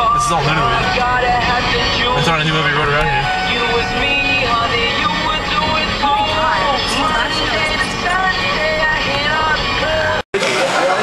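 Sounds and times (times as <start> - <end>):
car hum on road: 0.0 - 10.2
song on car radio: 0.0 - 10.3.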